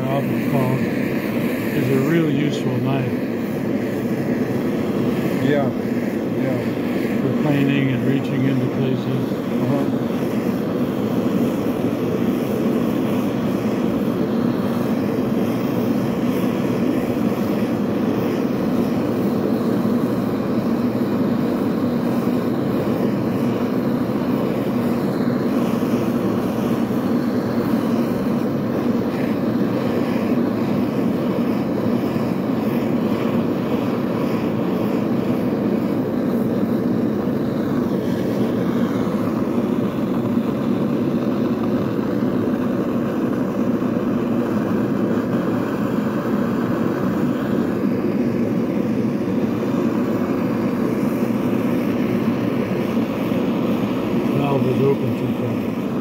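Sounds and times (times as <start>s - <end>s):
gas torch flame rushing: 0.0s - 56.0s.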